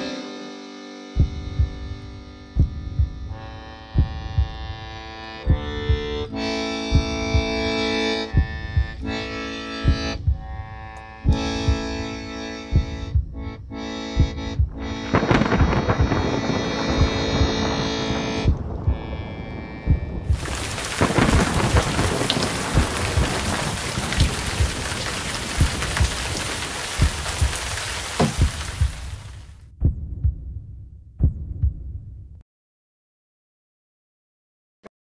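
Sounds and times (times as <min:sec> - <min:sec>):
held musical tones: 0:00.0 - 0:20.8
irregular low thuds: 0:01.2 - 0:32.4.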